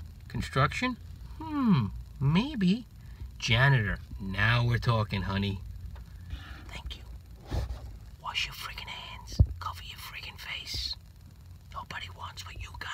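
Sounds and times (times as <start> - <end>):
low steady hum: 0.0 - 12.9
man whispering: 6.4 - 7.2, 8.2 - 11.0, 11.7 - 12.9.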